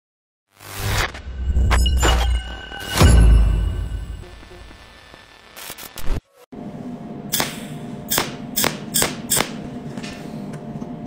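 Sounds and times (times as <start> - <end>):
logo sting: 0.5 - 5.3.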